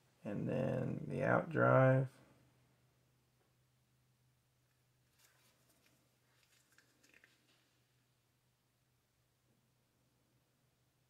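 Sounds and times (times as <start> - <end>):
faint clicks and rustles of parts: 4.6 - 8.0.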